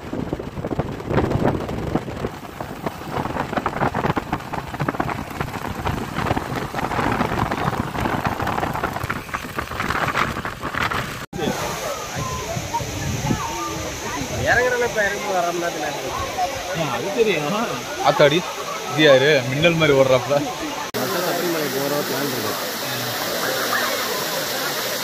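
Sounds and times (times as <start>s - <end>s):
wind buffeting microphone: 0.0s - 17.1s
waterfall hissing: 1.5s - 25.0s
crowd voices: 11.4s - 25.0s.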